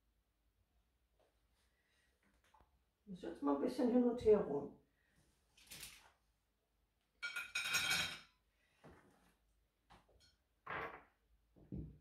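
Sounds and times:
plates clinking and scraping: 7.2s - 8.3s.

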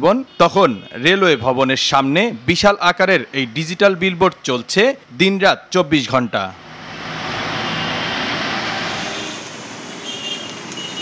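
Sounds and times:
vehicle passing by: 6.6s - 10.0s.

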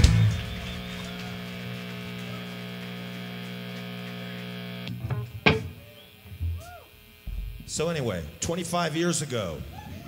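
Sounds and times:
guitar amplifier hum and buzz: 0.0s - 10.0s.

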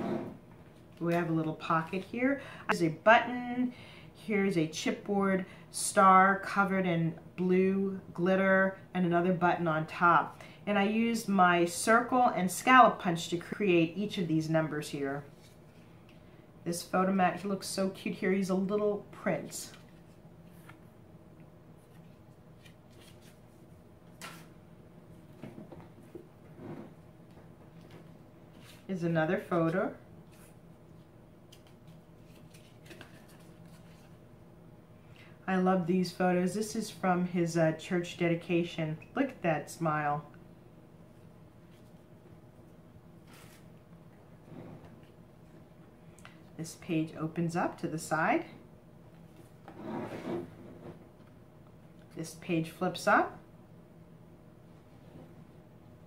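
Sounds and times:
low room hum: 0.0s - 56.0s
rustling of album pages: 19.4s - 20.9s, 21.7s - 24.6s, 27.6s - 34.2s, 43.2s - 43.8s.

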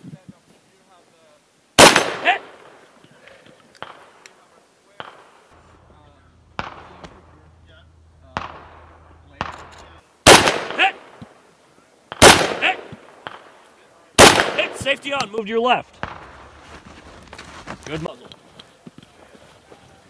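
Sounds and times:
rifle shots with echo: 1.8s - 2.8s, 3.8s - 4.2s, 4.9s - 11.4s, 12.1s - 13.6s, 14.2s - 15.0s, 15.9s - 16.6s.

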